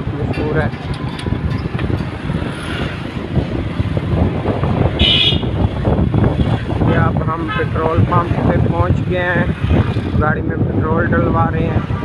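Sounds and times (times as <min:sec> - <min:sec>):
street traffic: 0:00.0 - 0:12.0
vehicle rumble: 0:00.0 - 0:12.0
vehicle horn beep: 0:05.0 - 0:05.6.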